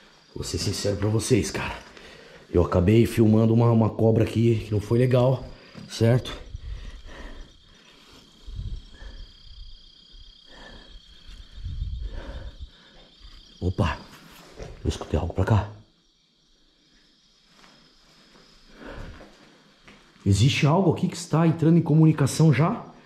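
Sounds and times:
crickets chirping: 0.0 - 23.0
footsteps rustling and thumping: 17.4 - 20.3.

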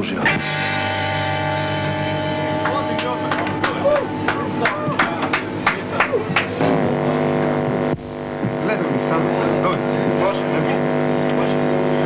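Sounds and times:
distorted electric guitar and bass drone: 0.0 - 12.0.

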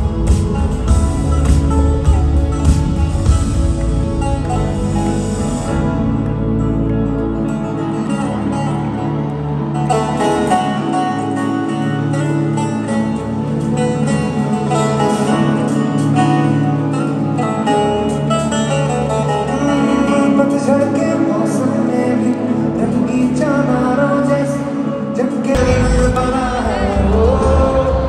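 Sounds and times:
guitar: 0.0 - 28.0
live band over arena pa: 0.0 - 28.0.

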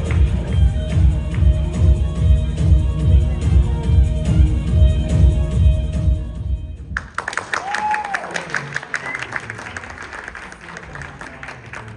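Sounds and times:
audience applauding: 7.0 - 11.9.

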